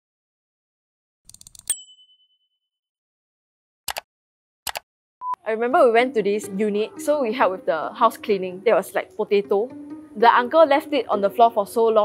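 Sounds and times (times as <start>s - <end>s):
bright ding: 1.7s - 2.4s.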